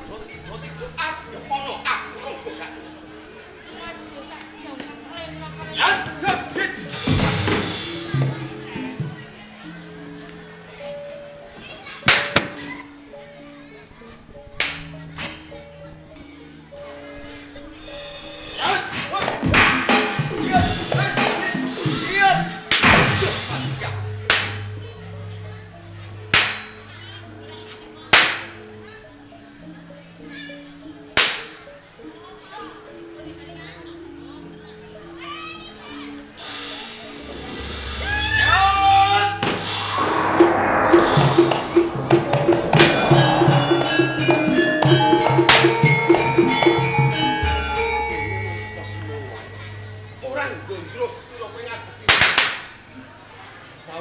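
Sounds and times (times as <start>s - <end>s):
gamelan low sustained notes: 36.4s - 51.7s.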